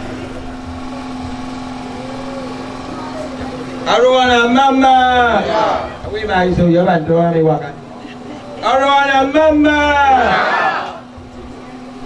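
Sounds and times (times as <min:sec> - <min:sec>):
faint background voices: 0:00.0 - 0:04.0, 0:07.5 - 0:08.8, 0:10.5 - 0:12.0.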